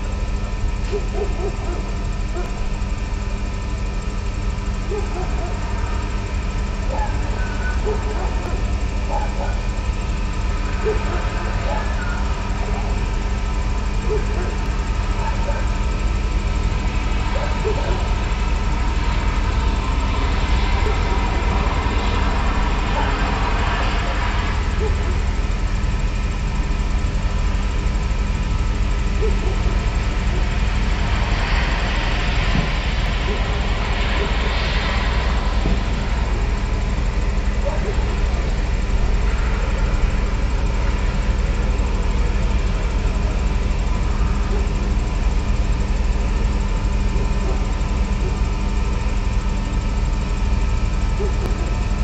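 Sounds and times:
sustained drone tones: 0.0 - 52.0.

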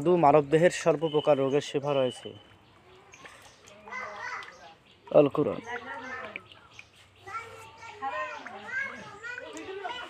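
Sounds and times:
high-pitched voices talking: 5.6 - 10.0.

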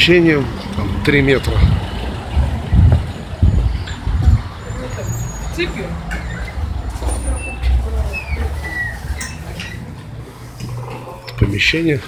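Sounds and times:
low rumbling surges: 0.0 - 10.9
street traffic: 0.0 - 12.0.

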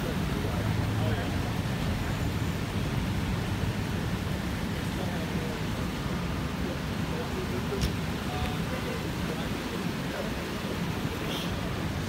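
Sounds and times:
faint voices: 0.0 - 12.0
rain hissing on street: 0.0 - 12.0.

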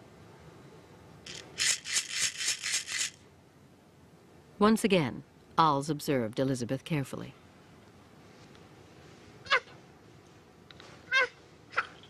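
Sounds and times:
hand-held rattle shaking: 1.2 - 3.2.

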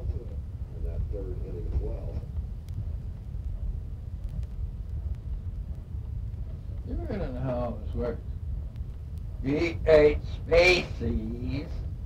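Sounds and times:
vinyl record rumble: 0.0 - 12.0
faint vinyl clicks: 1.7 - 6.9, 8.2 - 9.4.

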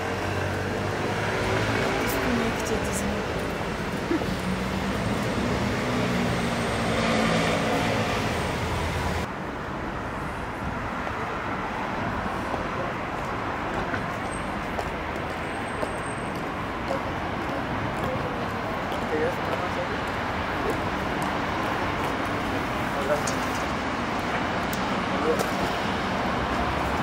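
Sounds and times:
city traffic noise: 0.0 - 27.0.

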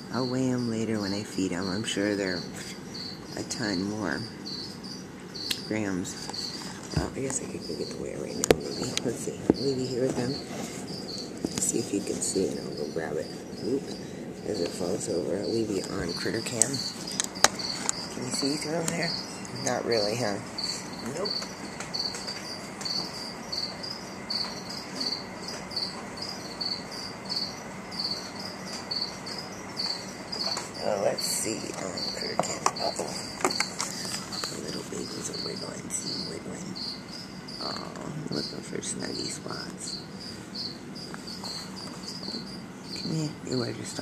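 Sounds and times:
cricket chirping: 0.0 - 44.0.

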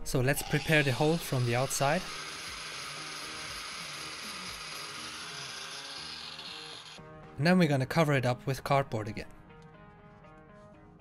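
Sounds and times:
angle grinder grinding steel: 0.1 - 7.0.

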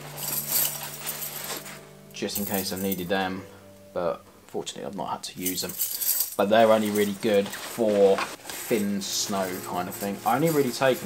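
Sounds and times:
metal chains jingling and clinking: 0.0 - 1.8, 2.4 - 3.0, 5.4 - 7.7, 8.6 - 11.0.

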